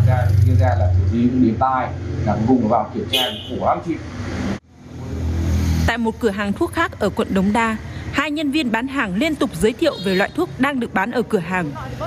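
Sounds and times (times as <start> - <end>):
vehicle passing close by: 0.0 - 8.3.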